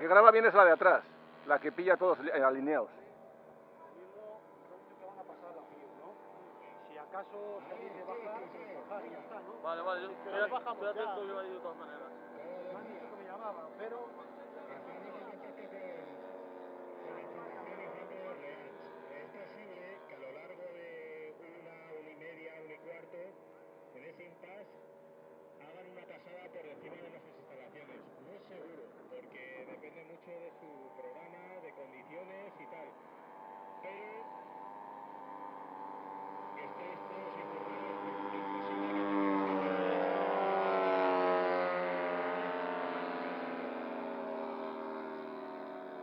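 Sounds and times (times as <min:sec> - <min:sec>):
model aircraft engines droning: 0:00.0 - 0:46.0.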